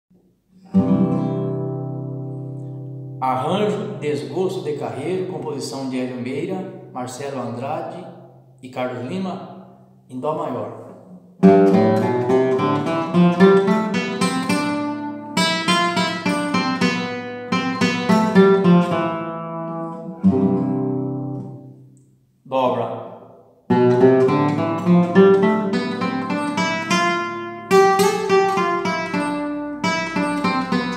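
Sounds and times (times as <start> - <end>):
classical guitar chord strummed: 0.6 - 3.2, 11.4 - 21.9, 23.7 - 30.9.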